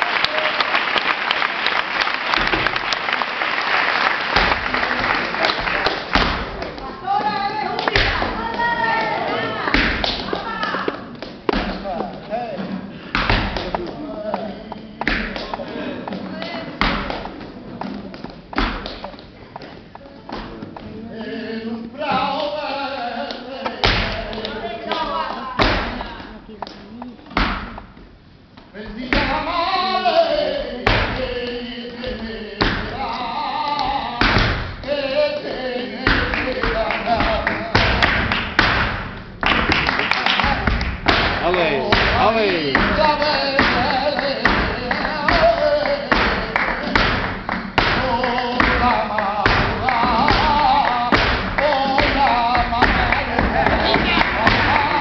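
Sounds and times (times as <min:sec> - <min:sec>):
rhythmic hand claps: 0:00.0 - 0:20.9, 0:23.2 - 0:28.0, 0:28.6 - 0:55.0
flamenco stamps on stage floor: 0:01.9 - 0:03.2, 0:04.0 - 0:08.7, 0:09.7 - 0:20.9, 0:23.3 - 0:55.0
man singing: 0:11.5 - 0:16.7, 0:20.7 - 0:27.4, 0:28.7 - 0:38.2, 0:41.3 - 0:55.0.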